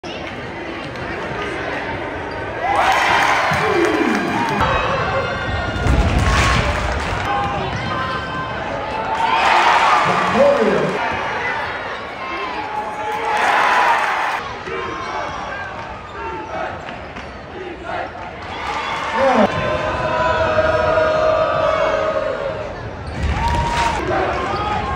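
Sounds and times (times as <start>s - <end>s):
spectators chattering and calling: 0.0s - 24.9s.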